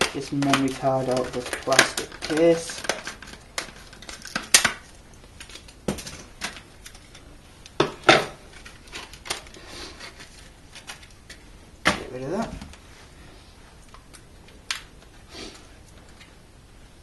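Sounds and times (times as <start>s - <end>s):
plastic being handled: 0.0s - 15.2s.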